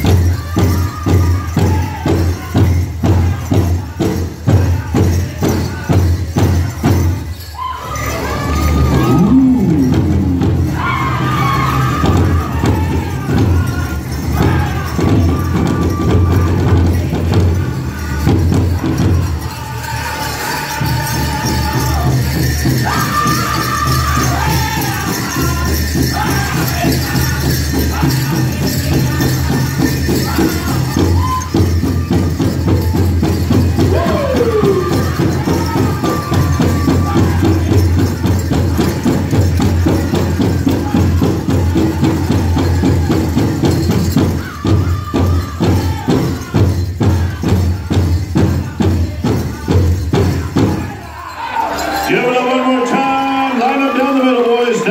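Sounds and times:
drum group singing: 0.0 - 54.9
jingling bells: 0.0 - 54.9
big drum beating: 8.4 - 19.5, 20.8 - 51.0.

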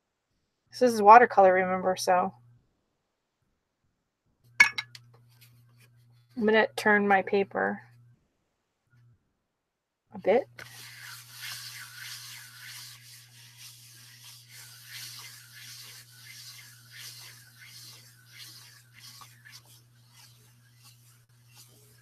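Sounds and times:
palms swishing on paper: 10.6 - 22.0.

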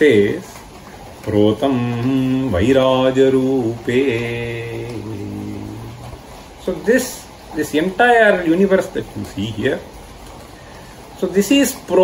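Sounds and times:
man chanting: 1.3 - 9.8.

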